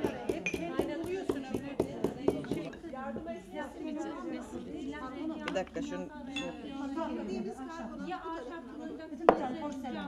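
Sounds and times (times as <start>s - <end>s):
pestle pounding in ceramic mortar: 0.0s - 2.8s.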